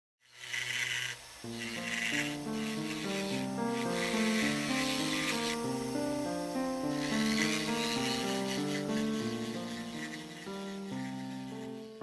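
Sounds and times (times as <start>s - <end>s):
tool rasping on metal: 0.2s - 12.0s
music with held notes: 1.4s - 12.0s.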